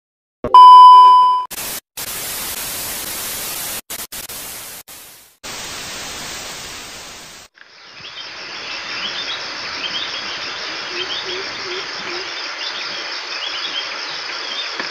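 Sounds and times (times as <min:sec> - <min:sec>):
test-tone beep: 0:00.5 - 0:01.5
television static hiss: 0:01.6 - 0:14.9
birds chirping: 0:07.7 - 0:14.8.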